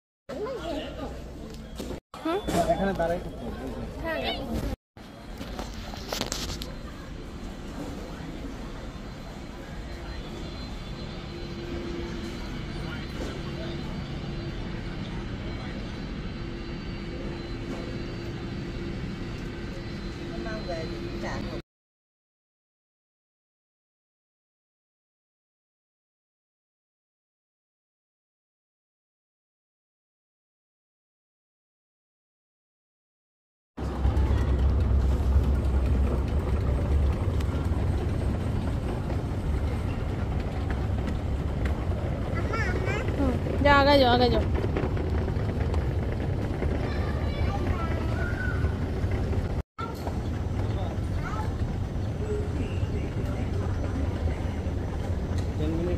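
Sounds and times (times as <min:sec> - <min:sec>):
terminal background noise: 0:00.3 - 0:21.6, 0:33.8 - 0:55.9
airliners droning: 0:00.4 - 0:21.6, 0:33.8 - 0:55.9
constant hum: 0:00.4 - 0:21.6, 0:33.8 - 0:55.9.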